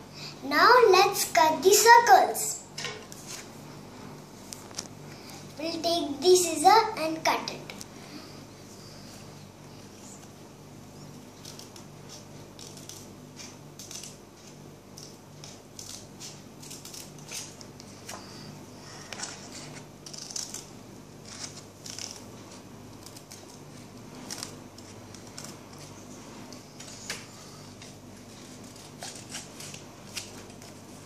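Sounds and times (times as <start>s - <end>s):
scissors snipping paper: 11.4s - 17.7s, 20.0s - 22.3s, 26.7s - 30.8s.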